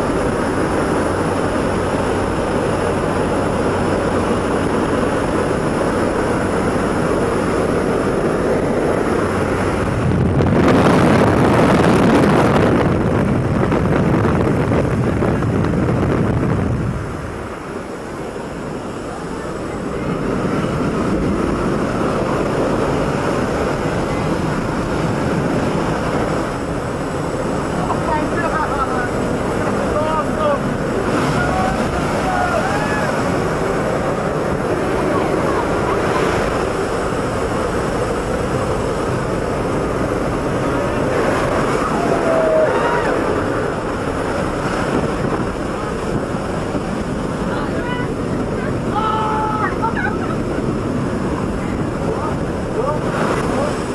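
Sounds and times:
plane engine: 0.0 - 53.9.

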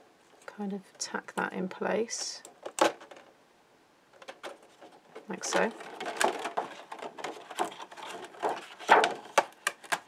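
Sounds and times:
plastic sheet crackling: 4.3 - 10.0.

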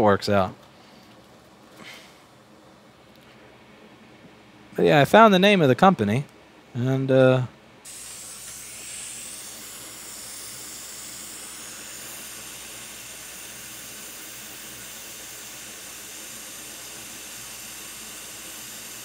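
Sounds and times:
hot air rework station hissing: 7.8 - 19.0.

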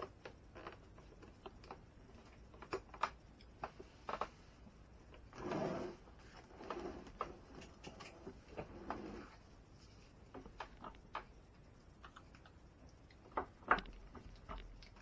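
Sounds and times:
scrape or rustle: 5.3 - 10.1.

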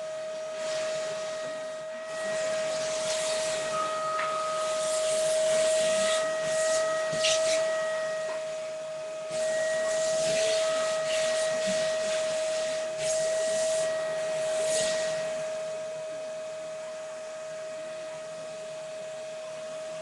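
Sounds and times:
vacuum cleaner running: 0.0 - 20.0.

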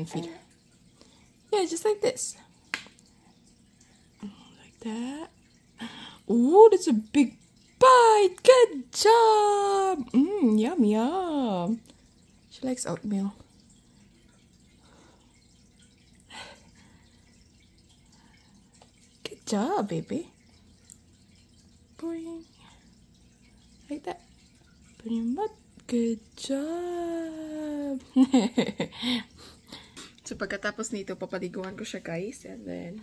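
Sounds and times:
woman speaking: 0.0 - 0.4, 1.5 - 2.4, 6.3 - 11.8, 12.6 - 13.4, 19.2 - 20.3, 22.0 - 22.5, 23.9 - 24.2, 25.0 - 28.0, 30.2 - 33.0.

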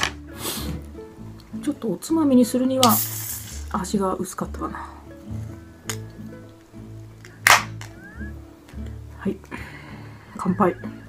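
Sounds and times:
guitar music: 0.0 - 3.0, 3.7 - 11.0.

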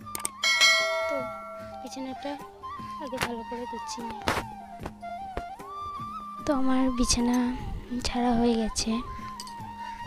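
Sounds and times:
background music: 0.0 - 10.0
bright bell chime: 0.4 - 2.2.

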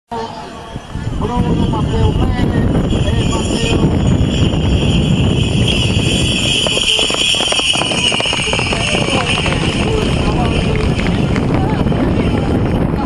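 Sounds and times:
horses galloping on dirt: 4.3 - 13.0.

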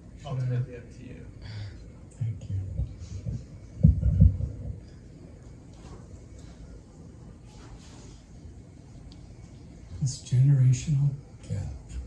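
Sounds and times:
microphone handling thumps: 2.7 - 4.9.

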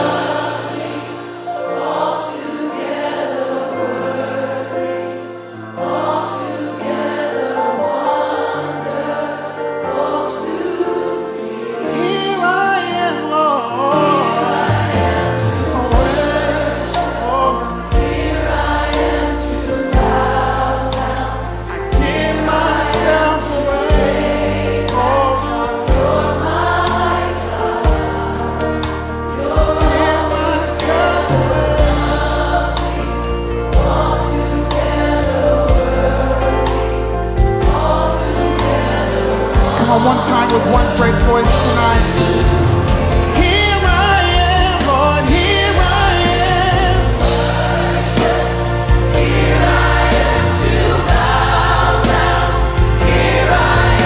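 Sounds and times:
gospel choir singing with band: 0.0 - 54.0
deep bass and drum beats: 39.6 - 54.0.

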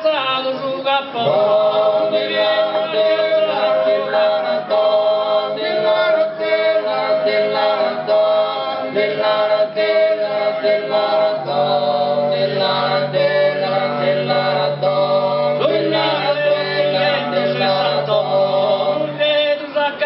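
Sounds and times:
men singing in harmony: 0.0 - 20.0.

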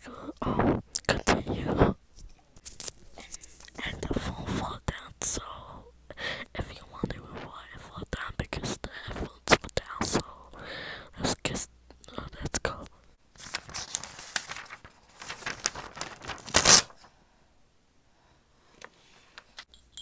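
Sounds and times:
girl whispering: 0.0 - 2.0, 3.1 - 13.0.

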